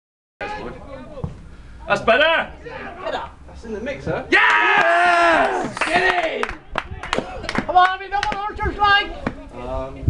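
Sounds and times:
men shouting: 4.3s - 6.5s.

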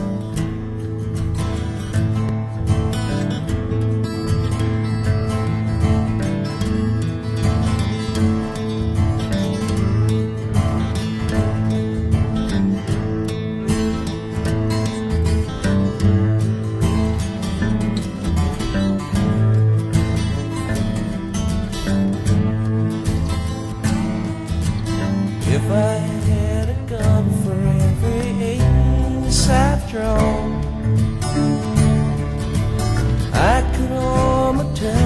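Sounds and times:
acoustic guitar chords: 0.0s - 35.0s.

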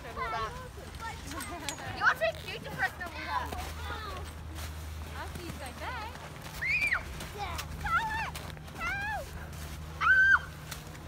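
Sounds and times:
young children squealing: 10.0s - 10.5s.

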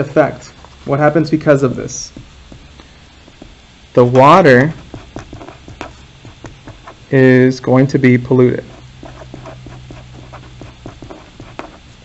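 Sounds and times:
faint low hum: 0.0s - 12.0s
felt-tip pen scratching on paper: 4.6s - 7.1s, 8.6s - 11.8s.

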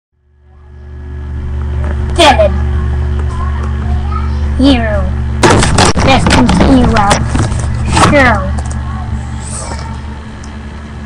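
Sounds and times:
low hum with hiss: 0.2s - 11.0s.

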